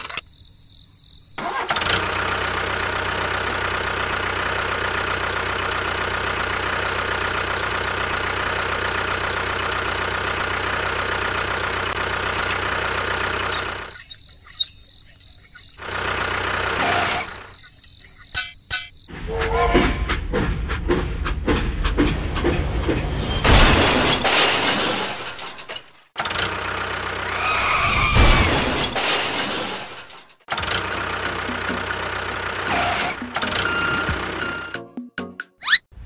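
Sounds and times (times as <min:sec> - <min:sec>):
clicks: 0:12.2 - 0:15.8.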